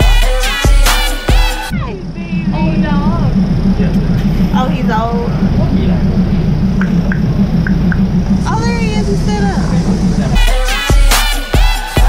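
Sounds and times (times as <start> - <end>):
passenger train running: 0.0 - 12.0
person calling out: 1.7 - 3.3.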